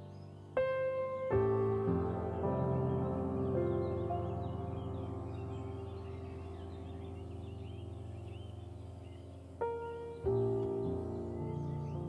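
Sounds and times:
birds chirping: 0.0s - 12.0s
soft ambient music: 0.0s - 12.0s.

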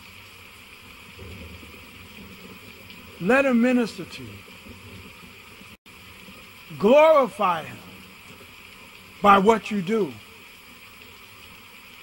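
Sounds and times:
man speaking: 3.2s - 4.4s, 6.7s - 7.9s, 9.2s - 10.2s.

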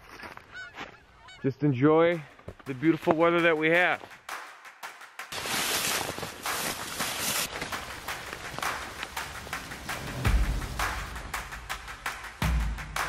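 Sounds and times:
footsteps through dry grass: 0.0s - 1.4s, 5.3s - 10.7s.

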